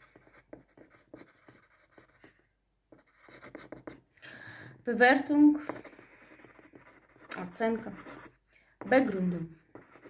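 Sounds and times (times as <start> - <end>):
pen scratching on paper: 0.0 - 4.1, 5.5 - 10.0.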